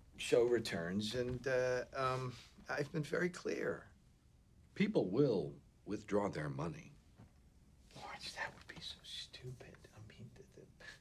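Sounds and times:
man whispering: 7.9 - 11.0.

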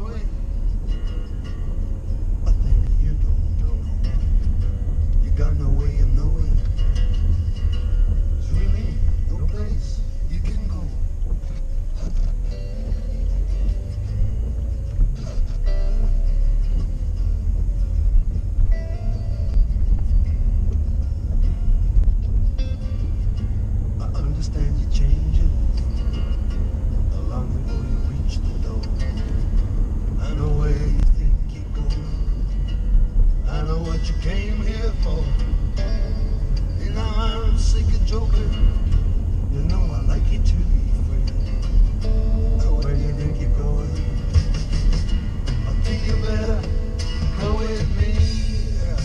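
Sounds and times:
car driving rumble: 0.0 - 49.0
song on car stereo: 0.0 - 49.0.

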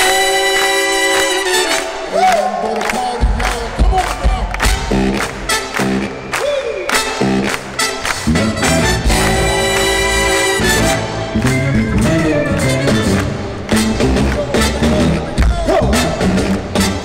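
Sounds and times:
audience cheering: 0.0 - 7.0, 8.6 - 15.0
live funk band playing: 3.6 - 6.2, 6.9 - 17.0.

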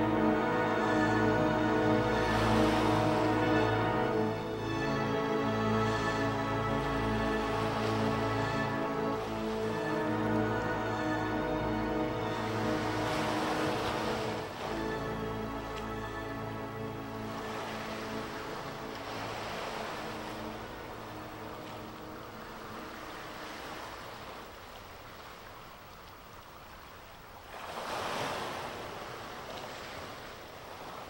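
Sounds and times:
synthesizer music: 0.0 - 19.0
ocean waves washing in: 0.0 - 31.0.

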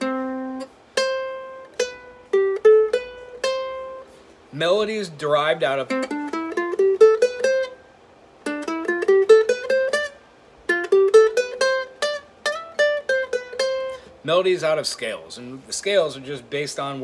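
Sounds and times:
ukulele playing a scale: 0.0 - 17.0.

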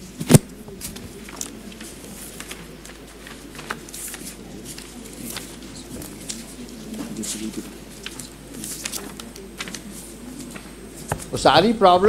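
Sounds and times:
pages flicking: 0.0 - 11.3
low murmur: 0.0 - 12.0.

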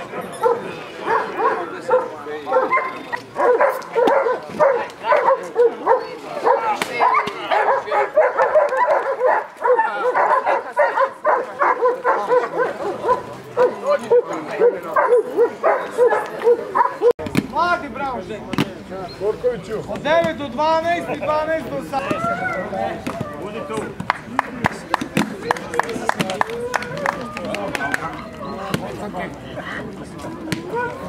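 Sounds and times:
dogs barking: 0.3 - 17.2.

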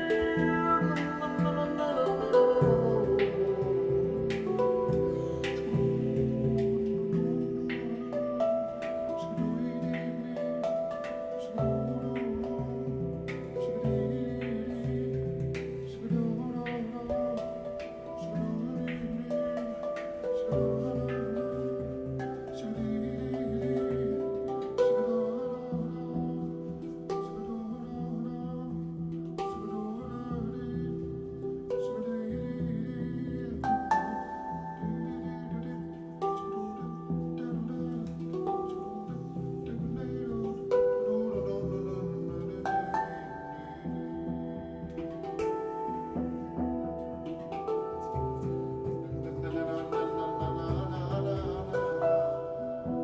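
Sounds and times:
deep low handpan notes: 0.0 - 53.0
handpan notes ringing: 0.0 - 53.0.

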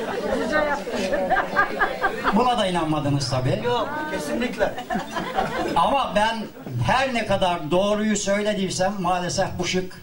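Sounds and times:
chatter of voices in a hall: 0.0 - 10.0.

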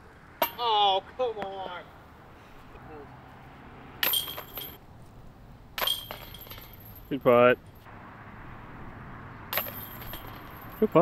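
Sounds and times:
discs rattling basket chains: 4.0 - 4.8, 5.8 - 7.8, 9.6 - 11.0.

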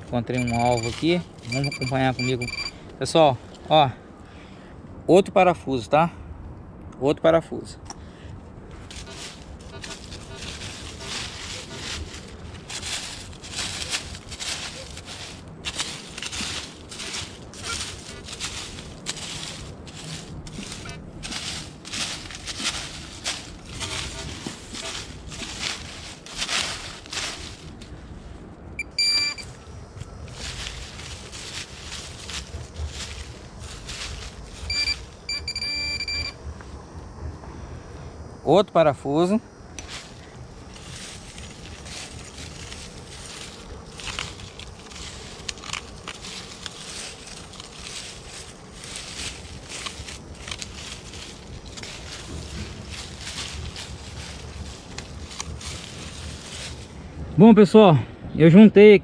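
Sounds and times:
scraping through dry leaves: 0.0 - 2.8, 8.7 - 35.3, 39.8 - 57.0
high electronic beeps: 0.2 - 2.7, 28.8 - 29.5, 34.7 - 36.4
steady electronic beep: 0.2 - 2.8, 28.8 - 29.5, 34.7 - 36.4.

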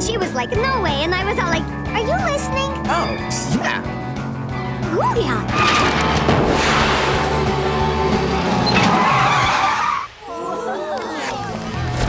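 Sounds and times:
cartoon scooter skid screech: 8.6 - 10.1.

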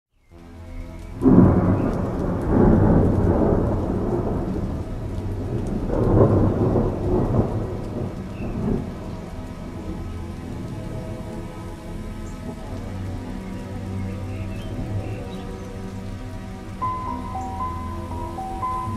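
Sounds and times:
steady rain: 0.2 - 18.9
loud thunder clap: 1.2 - 9.0
rolling thunder: 1.2 - 11.7, 16.0 - 18.9.

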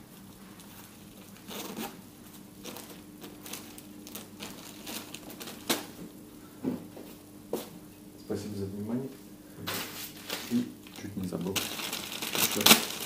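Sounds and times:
plastic bag rustling: 0.0 - 6.1, 9.7 - 13.0.

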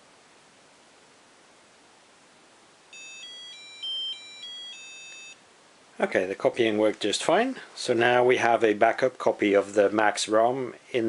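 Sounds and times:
electronic beeper melody: 3.0 - 5.4.

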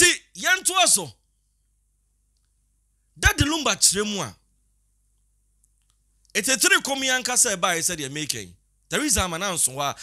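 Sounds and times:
man speaking: 0.0 - 1.2, 3.2 - 4.4, 6.4 - 10.0.

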